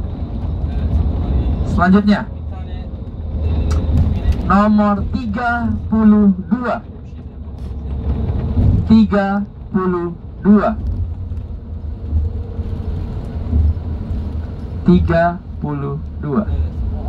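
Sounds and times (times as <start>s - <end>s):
bus road and engine rumble: 0.0s - 17.0s.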